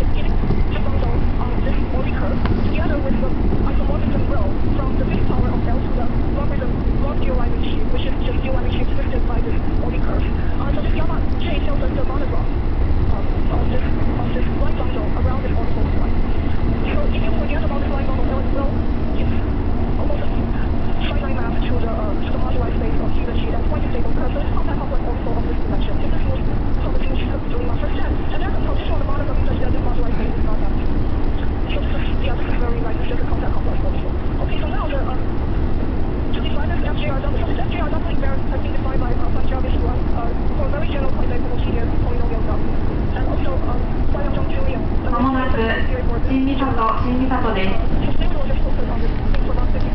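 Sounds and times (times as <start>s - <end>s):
faint steady hum: 0.0s - 49.9s
train wheels rumbling on track: 0.0s - 49.9s.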